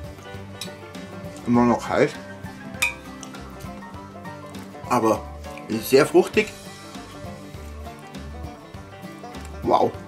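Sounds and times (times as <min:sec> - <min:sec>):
background music: 0:00.0 - 0:10.0
metal spoon clinking on plate: 0:02.8 - 0:03.0.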